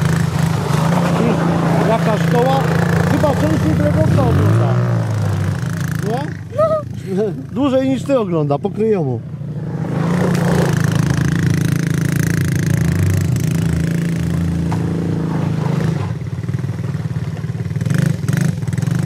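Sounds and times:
quad bike engine running: 0.0 - 19.0.

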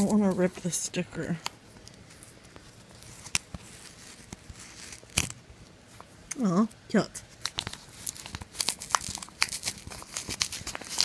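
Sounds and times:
paper rustling: 1.7 - 5.3, 7.3 - 11.0
sticker peeled off paper: 7.4 - 11.0.

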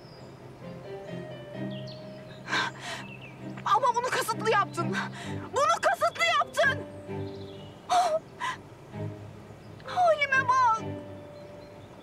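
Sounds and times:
background music: 0.6 - 12.0.

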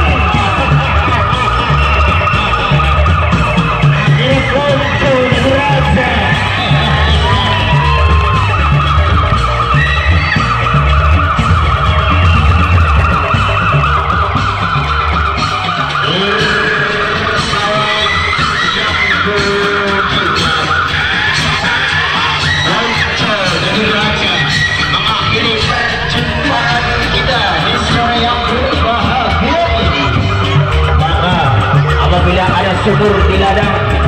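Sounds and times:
heavy drumming: 0.0 - 34.0
high wavering melody: 0.0 - 34.0.

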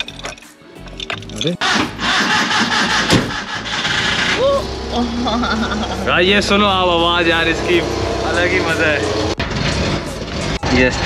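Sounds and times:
car engine starting and running: 1.0 - 11.0.

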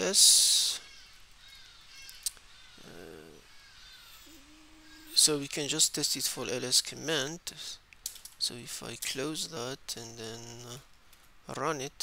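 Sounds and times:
man saying uh: 0.0 - 0.9, 2.8 - 3.4.

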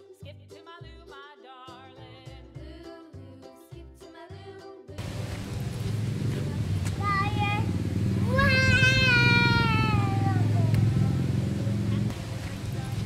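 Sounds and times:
toddler calling: 7.0 - 10.6.

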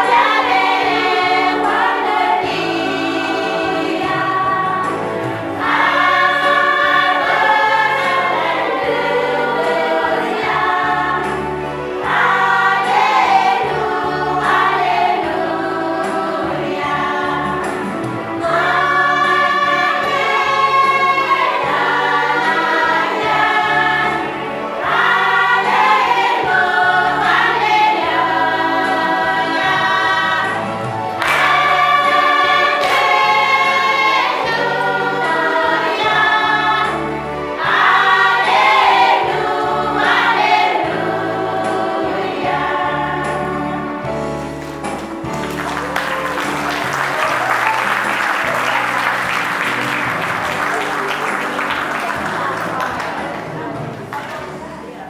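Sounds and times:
women singing a church song: 0.0 - 44.4, 47.9 - 55.0
amplified accompaniment with bass: 0.0 - 55.0.

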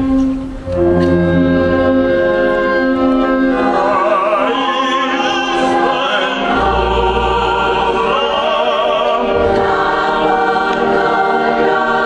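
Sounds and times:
choir singing sustained notes: 0.0 - 12.0
string orchestra: 0.0 - 12.0.

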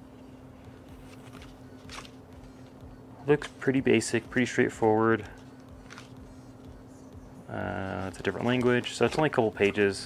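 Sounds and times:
low steady hum: 0.0 - 10.0
paper pages rustling: 1.0 - 2.2, 5.8 - 6.2, 7.8 - 10.0.

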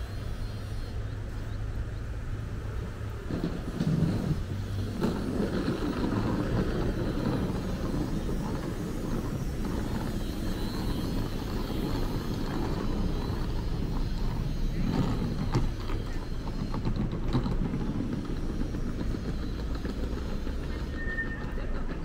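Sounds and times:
street traffic rumble: 0.0 - 22.0.

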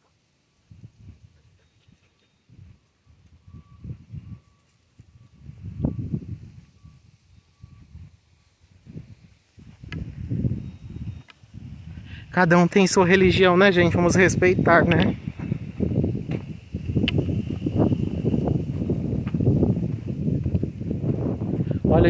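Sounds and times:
wind buffeting microphone: 0.7 - 22.0
faint high beep: 1.6 - 9.4, 10.4 - 11.3.

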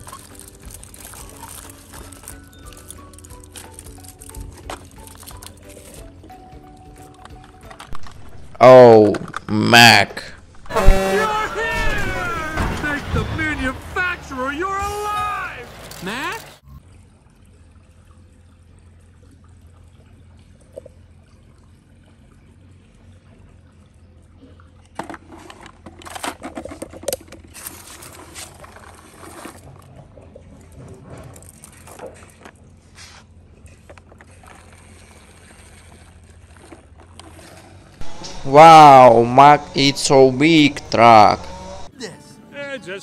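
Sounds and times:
plastic toy truck clicks and rattles: 0.0 - 9.5, 24.9 - 30.0.

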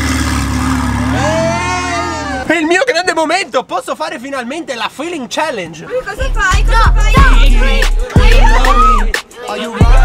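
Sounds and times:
person shouting: 1.1 - 2.5, 8.2 - 10.0.

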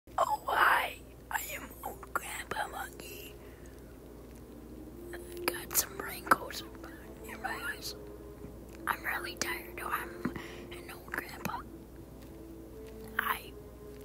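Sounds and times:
person breathing in whispers: 3.3 - 4.1, 9.8 - 11.5.

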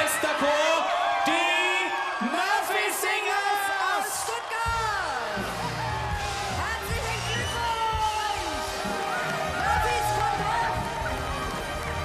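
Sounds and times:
people cheering and whooping: 0.0 - 12.0.

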